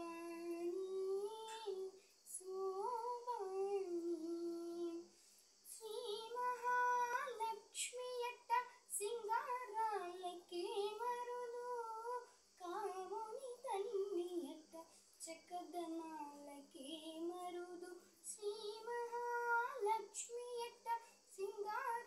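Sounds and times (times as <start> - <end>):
girl singing unaccompanied: 0.0 - 22.0.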